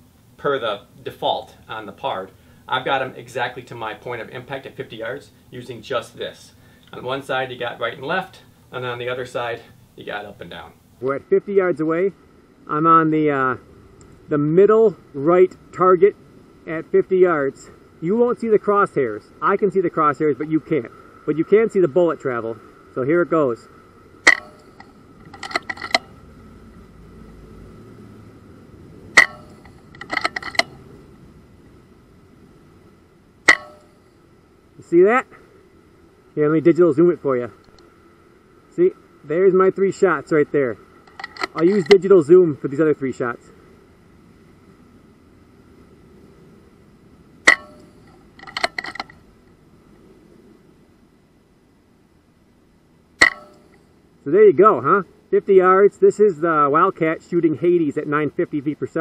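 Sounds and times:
rapid clicks: 24.2s - 26.2s, 29.2s - 30.8s, 47.5s - 49.2s
air rifle shots: 29.1s - 30.8s, 33.4s - 34.0s, 53.2s - 53.8s
air rifle shot: 53.2s - 53.6s.

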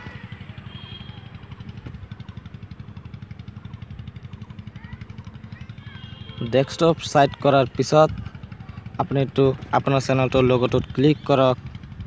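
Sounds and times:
machine rumbling with fast pulse: 0.0s - 6.5s.

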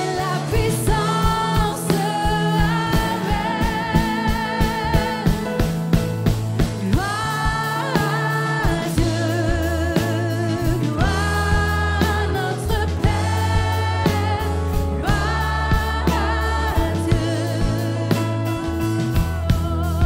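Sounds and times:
bass: 0.0s - 20.0s
keyboard: 0.0s - 20.0s
steady drum beat: 0.0s - 20.0s
voices singing worship song: 0.0s - 20.0s.

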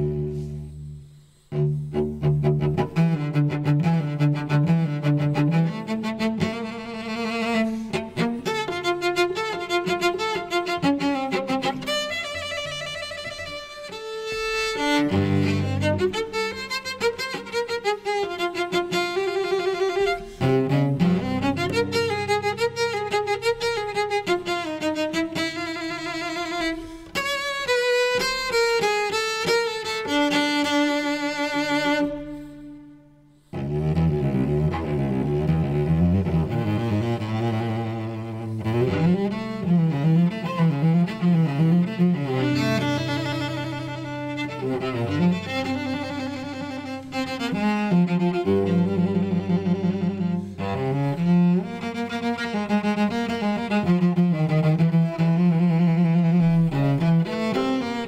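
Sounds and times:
bowed cello: 0.0s - 58.0s.

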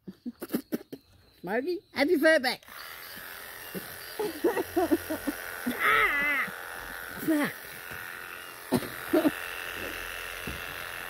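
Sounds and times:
electric clippers humming: 2.6s - 11.0s
voice: 7.2s - 7.6s.

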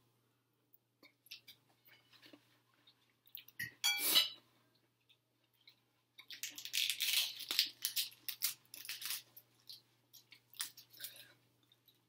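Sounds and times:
eating crunches: 5.5s - 12.0s.

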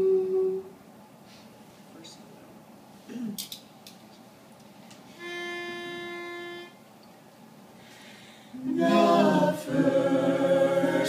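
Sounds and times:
pitch pipe note: 5.2s - 6.8s.

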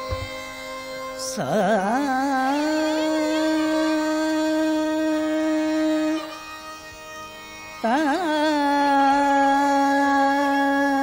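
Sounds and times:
harmonium: 0.0s - 11.0s
tanpura drone: 0.0s - 11.0s
person singing long note: 1.2s - 6.4s.

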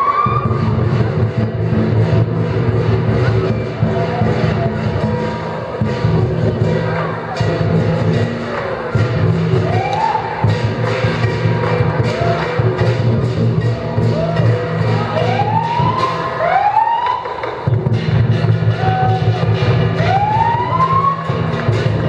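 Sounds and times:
drum beaten continuously: 0.0s - 22.0s.

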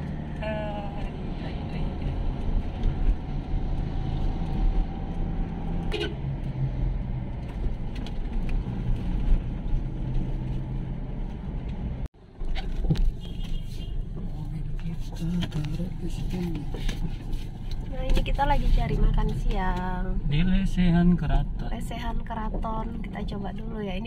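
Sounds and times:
car engine and road rumble: 0.0s - 24.0s.

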